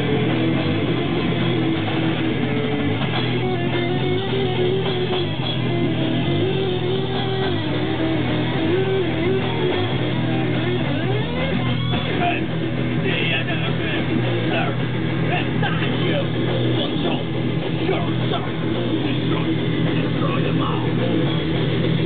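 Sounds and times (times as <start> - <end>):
bending guitar line: 0.0 - 22.0
live metal band playing: 0.0 - 22.0.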